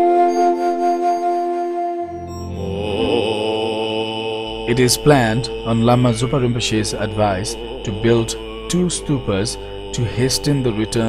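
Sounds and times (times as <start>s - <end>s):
low male voices chanting: 2.5s - 11.0s.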